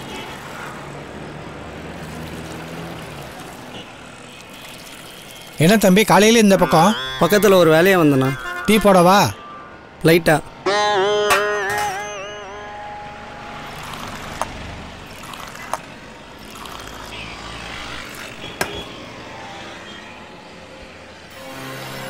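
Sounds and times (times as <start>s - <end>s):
wavering held tone: 6.6s - 9.9s.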